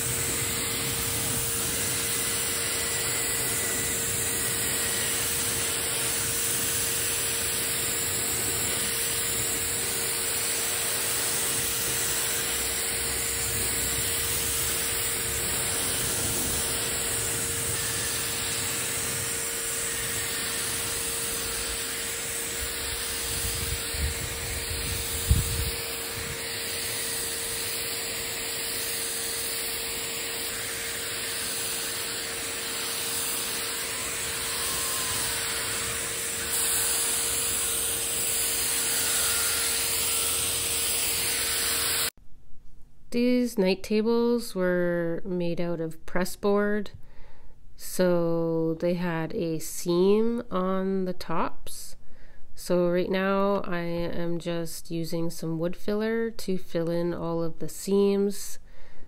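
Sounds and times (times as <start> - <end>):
paint sprayer motor whining: 0.0 - 42.1
spray gun hissing: 0.0 - 42.1.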